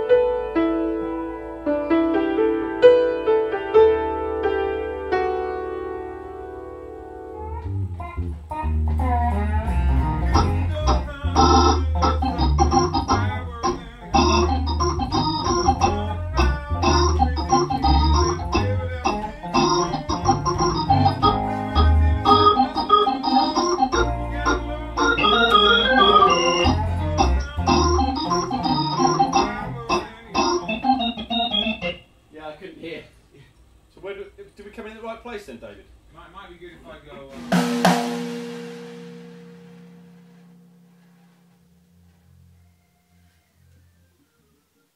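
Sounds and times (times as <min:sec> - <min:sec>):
band playing with organ: 0:07.2 - 0:32.0, 0:37.4 - 0:40.6.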